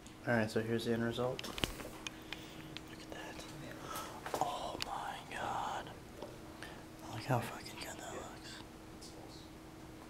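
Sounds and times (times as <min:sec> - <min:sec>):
steady low hum: 0:00.0 - 0:10.0
person whispering: 0:02.8 - 0:06.0, 0:07.0 - 0:09.3.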